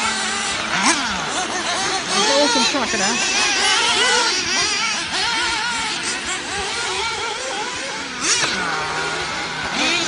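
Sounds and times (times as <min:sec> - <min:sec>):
small engines buzzing high-pitched: 0:00.0 - 0:10.0.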